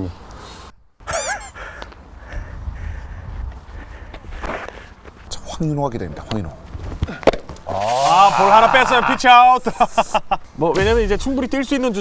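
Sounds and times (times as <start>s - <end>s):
outdoor ambience: 0.0s - 12.0s
high-pitched squawking call: 1.0s - 1.6s.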